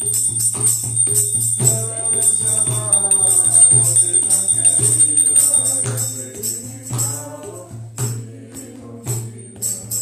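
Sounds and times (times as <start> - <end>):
hand cymbals ringing: 0.0 - 6.7
hand drum beating: 0.0 - 7.2
voices singing: 0.0 - 10.0.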